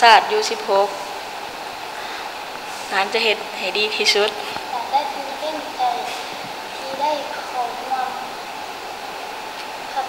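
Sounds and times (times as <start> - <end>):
steady background hiss: 0.0 - 10.0
girl speaking quietly: 4.3 - 8.3.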